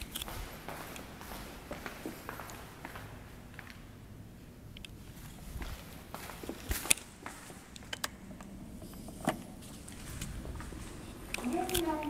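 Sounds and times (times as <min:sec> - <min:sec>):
footsteps on a hard floor: 0:05.5 - 0:07.6.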